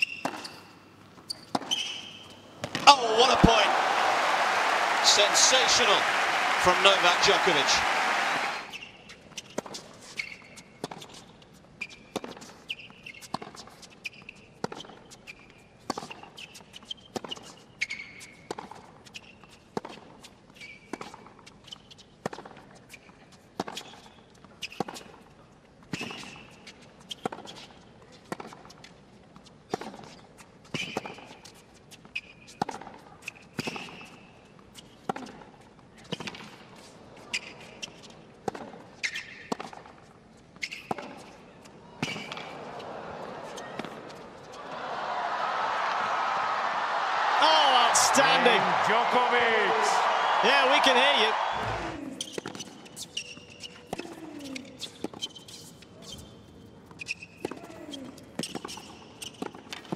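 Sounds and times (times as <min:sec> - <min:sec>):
shoes squeaking on court: 0:00.0 - 0:04.1, 0:08.4 - 0:25.2, 0:25.9 - 0:44.7, 0:49.5 - 0:59.9.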